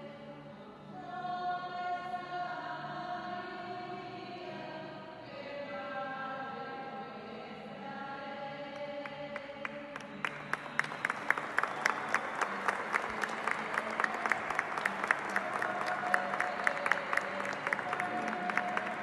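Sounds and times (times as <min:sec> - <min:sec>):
faint music or singing: 0:00.0 - 0:19.0
congregation applauding: 0:09.4 - 0:19.0.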